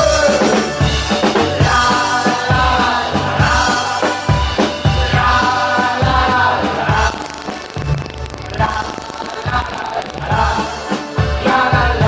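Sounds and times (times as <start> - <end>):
drums: 0.0 - 12.0
keyboard: 0.0 - 12.0
live band playing loud music: 0.0 - 12.0.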